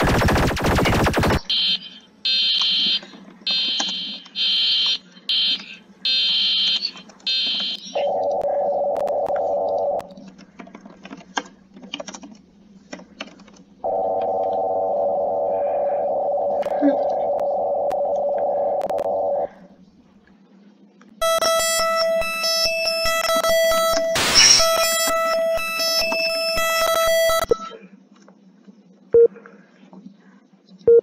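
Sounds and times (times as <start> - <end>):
steady buzzing alarm tone: 0.0 - 7.8, 21.2 - 27.7
harsh clicking alarm tone: 0.0 - 10.0, 21.2 - 27.7.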